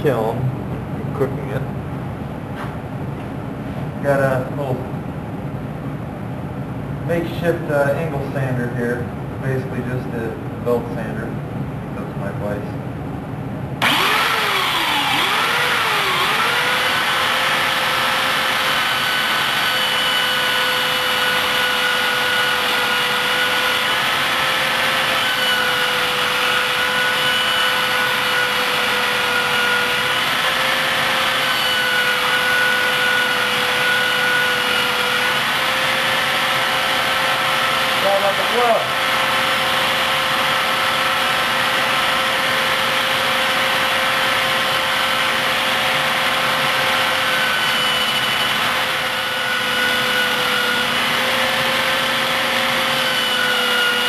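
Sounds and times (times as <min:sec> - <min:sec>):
belt sander motor whine: 0:13.8 - 0:54.0.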